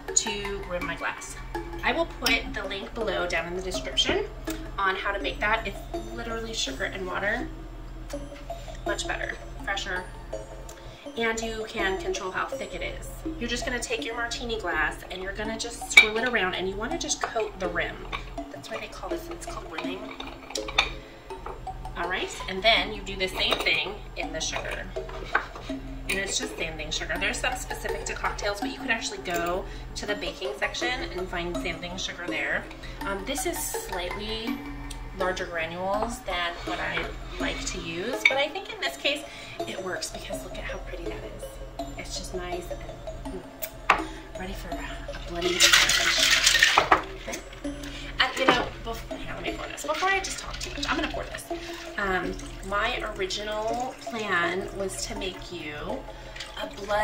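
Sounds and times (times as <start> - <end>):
soft background music: 0.0 - 57.0
ice rattling in cocktail shaker: 44.5 - 47.4.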